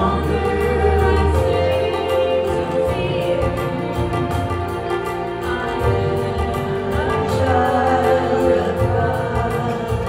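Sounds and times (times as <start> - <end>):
group singing worship song: 0.0 - 10.0
low musical accompaniment: 0.0 - 10.0.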